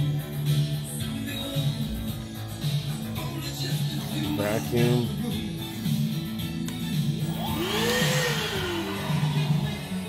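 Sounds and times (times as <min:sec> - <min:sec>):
vacuum motor whine: 0:07.3 - 0:10.0.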